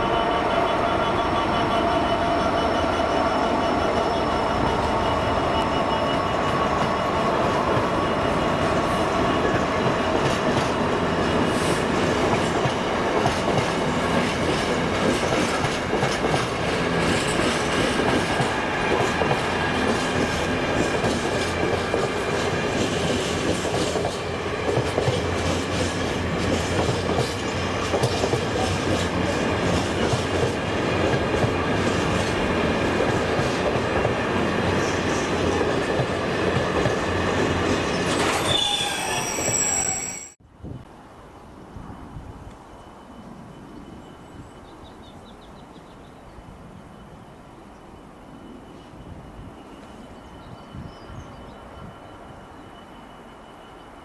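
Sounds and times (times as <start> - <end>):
freight train rumbling past: 0.0 - 40.9
thin wheel squeal: 37.9 - 40.4.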